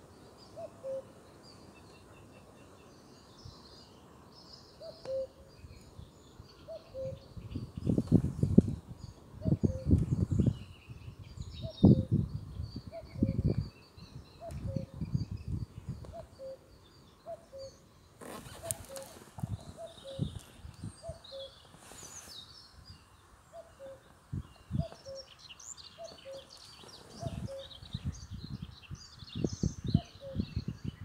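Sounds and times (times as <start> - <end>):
songbirds chirping: 0.0 - 31.0
cuckoo calling: 0.6 - 1.1, 4.8 - 5.5, 6.6 - 7.2, 14.4 - 15.0, 16.0 - 22.2, 23.5 - 24.1, 24.7 - 27.8, 30.0 - 30.6.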